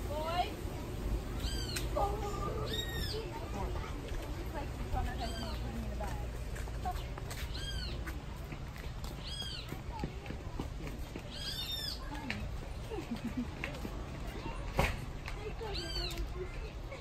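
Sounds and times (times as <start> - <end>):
animal calling: 1.4 - 3.4, 5.1 - 5.8, 7.5 - 8.1.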